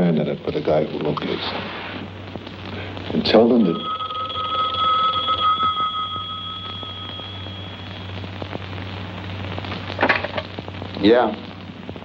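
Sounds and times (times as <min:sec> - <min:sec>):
telephone bell ringing: 0:03.6 - 0:08.3.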